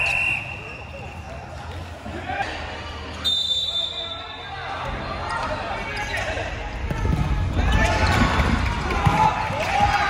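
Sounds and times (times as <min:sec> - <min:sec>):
reverberant hall hubbub: 0:00.0 - 0:10.0.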